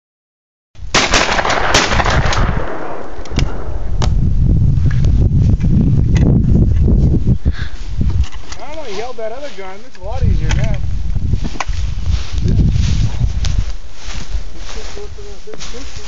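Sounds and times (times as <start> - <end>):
shotgun reports echoing: 0.9 - 4.1
sharp clicks: 1.1 - 4.2
low rumble: 1.4 - 8.1.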